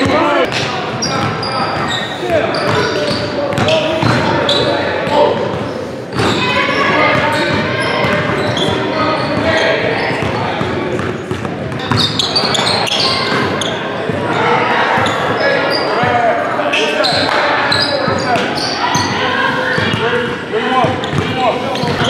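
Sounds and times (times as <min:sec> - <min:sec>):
players calling out: 0:00.0 - 0:22.0
sneakers squeaking: 0:00.0 - 0:22.0
basketball bouncing on wood floor: 0:21.0 - 0:21.3.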